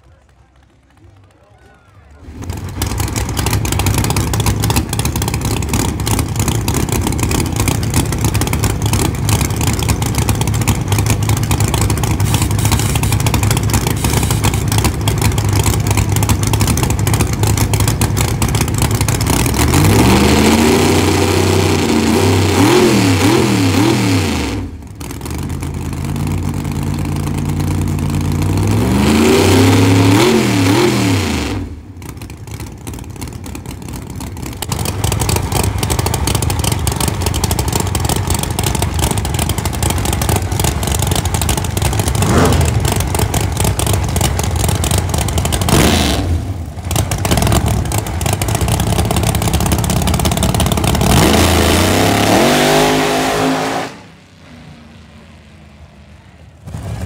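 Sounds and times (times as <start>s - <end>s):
racing car engine revving: 2.2s - 32.1s, 34.6s - 57.0s.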